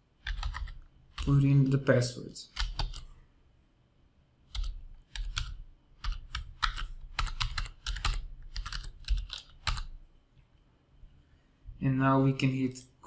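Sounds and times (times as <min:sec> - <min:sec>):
typing on computer keyboard: 0:00.2 - 0:01.4, 0:02.5 - 0:03.1, 0:04.5 - 0:10.0.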